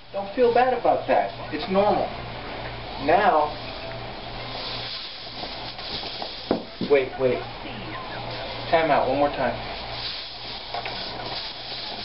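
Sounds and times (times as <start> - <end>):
low electrical hum: 0.0 - 12.0
steady hiss: 0.0 - 12.0.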